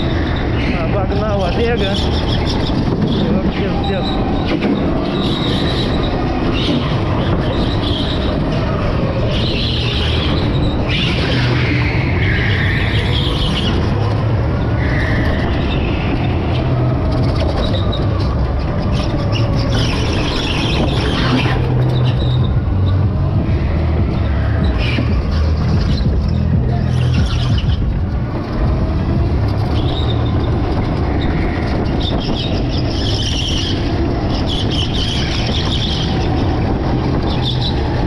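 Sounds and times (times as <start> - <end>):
go-kart low rumble: 0.0 - 38.0
tyre squeals: 1.7 - 14.0, 14.6 - 27.9, 29.5 - 38.0.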